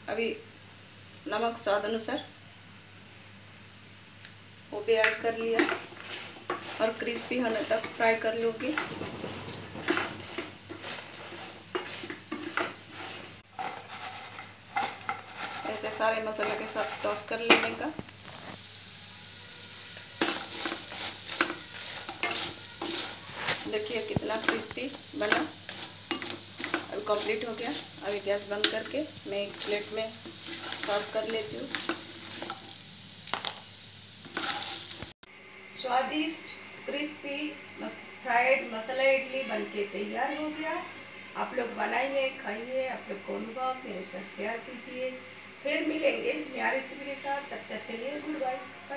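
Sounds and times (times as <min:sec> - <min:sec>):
oil sizzling: 0:00.0 - 0:35.2
spatula scraping a pan: 0:05.0 - 0:18.6, 0:19.6 - 0:32.8, 0:34.2 - 0:35.2.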